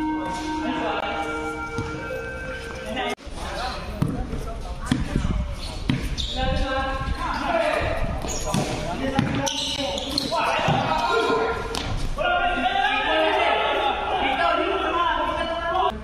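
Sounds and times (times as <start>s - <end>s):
basketball bouncing on court: 8.5s - 9.5s.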